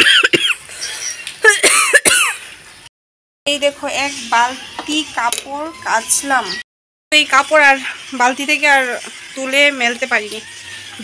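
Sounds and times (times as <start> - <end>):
birds calling: 0.3 - 1.4, 4.0 - 6.6.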